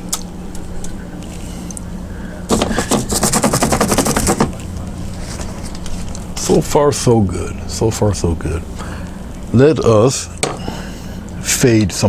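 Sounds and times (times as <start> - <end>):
paintbrush scrubbing on canvas: 2.5 - 4.6.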